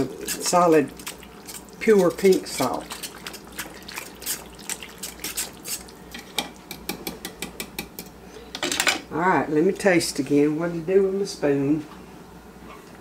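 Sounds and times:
metal spoon stirring in a pan: 0.0 - 6.5.

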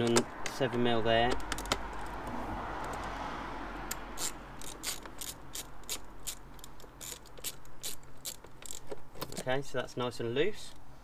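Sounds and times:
ratchet wrench clicking: 3.9 - 9.4.

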